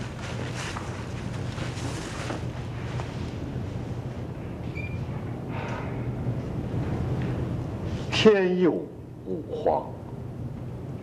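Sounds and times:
soundtrack hiss and hum: 0.0 - 11.0.

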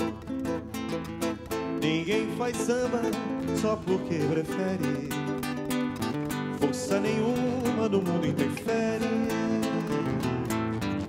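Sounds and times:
nylon-string guitars playing samba: 0.0 - 11.0
man singing wordless melody: 1.7 - 5.6, 6.5 - 10.6.

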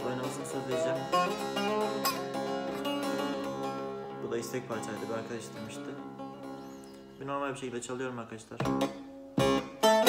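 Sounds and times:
long-necked lute picking notes: 0.0 - 7.2, 8.8 - 10.0.

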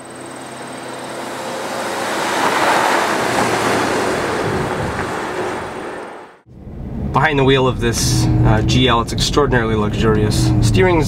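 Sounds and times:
car driving past: 9.8 - 11.0.

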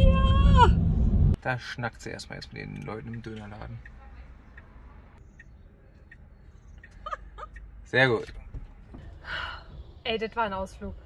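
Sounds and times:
low rumble: 0.0 - 1.4
faint clicks: 2.7 - 7.7.

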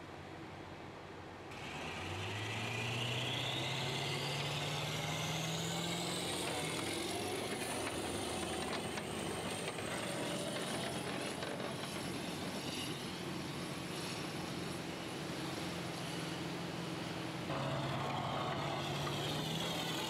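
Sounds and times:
tracked vehicle engine accelerating: 1.5 - 14.8, 15.4 - 20.0
high whine rising in pitch: 1.6 - 9.4.

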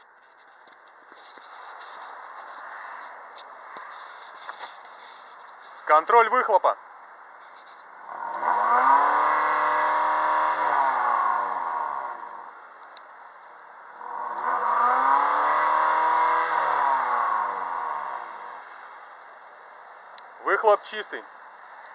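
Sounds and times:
car engine revving: 7.9 - 20.1.

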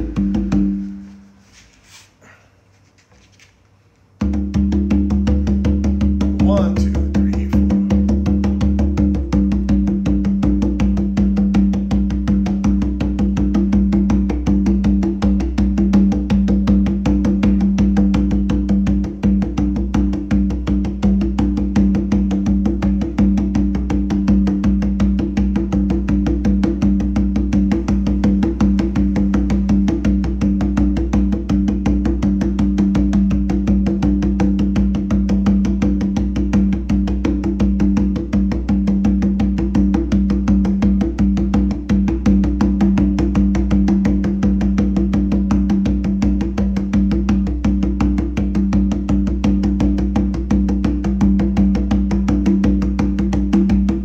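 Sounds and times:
hand drum palm strokes: 0.0 - 21.4.

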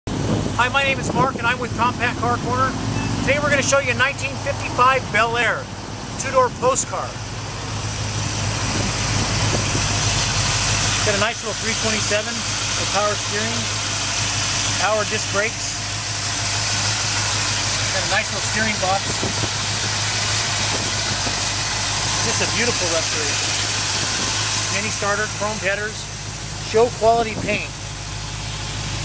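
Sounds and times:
car engine idling: 0.1 - 29.0.

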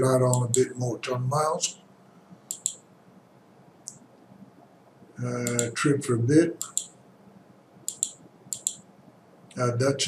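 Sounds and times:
low room noise: 0.0 - 10.0
faint computer mouse click: 2.5 - 2.8, 6.6 - 7.0, 7.9 - 8.8.

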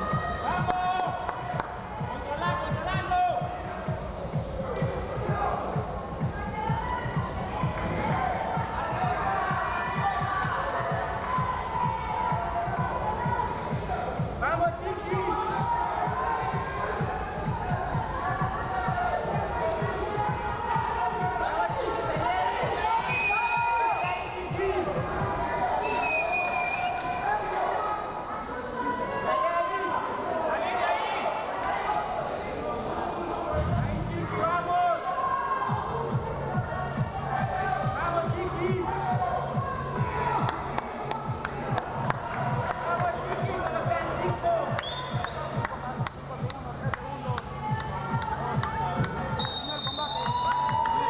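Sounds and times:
voices shouting in a hall: 0.0 - 51.0.

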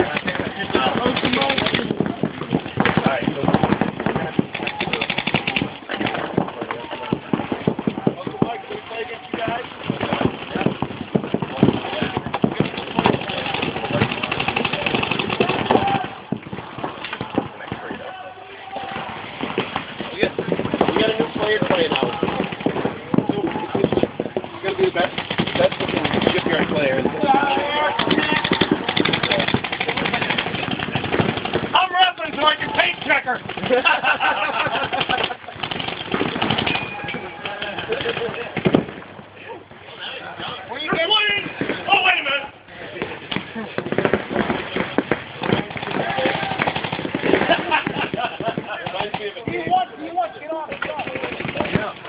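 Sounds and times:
paintball markers firing: 0.0 - 8.6, 9.3 - 18.0, 18.8 - 39.0, 43.0 - 49.8, 50.7 - 52.0.

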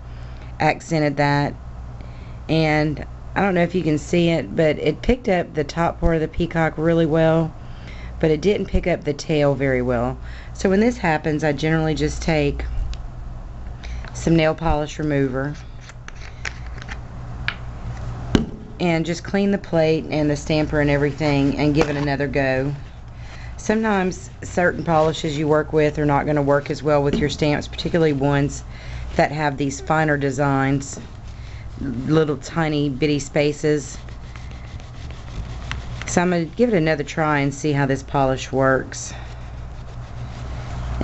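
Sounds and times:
low steady hum: 0.0 - 41.0
paper towel rubbing on metal plate: 19.0 - 37.0, 39.1 - 41.0.

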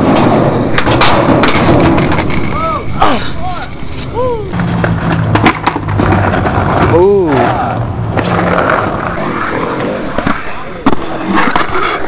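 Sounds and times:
skateboard clattering on concrete: 0.0 - 2.7, 4.5 - 7.5, 8.1 - 12.0
skater hitting the ground: 0.0 - 2.9, 4.5 - 7.0.

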